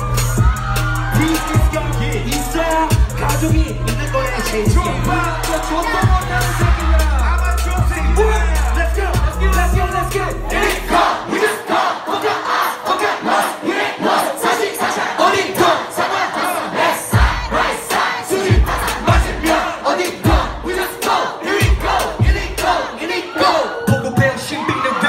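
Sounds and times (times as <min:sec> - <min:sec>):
crowd shouting and chanting: 0:00.0 - 0:25.0
heavy kick drum: 0:04.7 - 0:05.1, 0:06.0 - 0:08.3, 0:09.1 - 0:10.2, 0:17.2 - 0:17.6, 0:18.5 - 0:19.5, 0:21.6 - 0:22.6.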